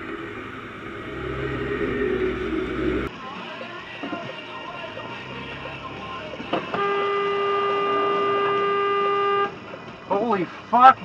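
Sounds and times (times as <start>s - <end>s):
car horn long blast: 6.6s - 9.6s.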